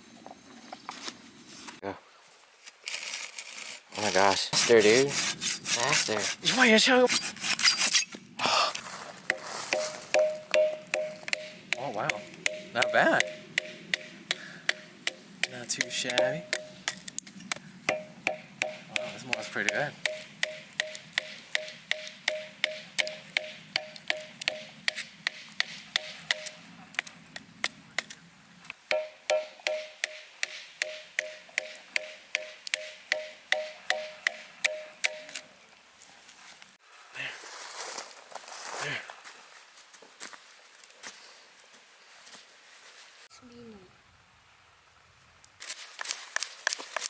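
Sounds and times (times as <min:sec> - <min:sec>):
knife shaving wood: 0:02.9 - 0:08.0, 0:45.6 - 0:47.0
knife batoned through wood: 0:04.5 - 0:08.1, 0:09.3 - 0:28.2
metallic ping of strikes: 0:09.3 - 0:17.0, 0:17.9 - 0:26.6, 0:28.9 - 0:35.4.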